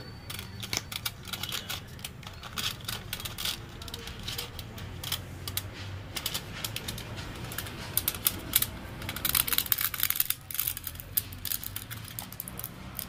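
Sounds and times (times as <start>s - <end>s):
plastic and foil crinkling: 0.0s - 13.0s.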